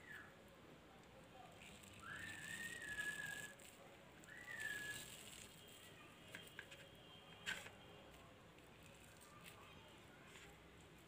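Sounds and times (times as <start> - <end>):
whistled notes: 1.9 - 3.6, 4.3 - 5.3.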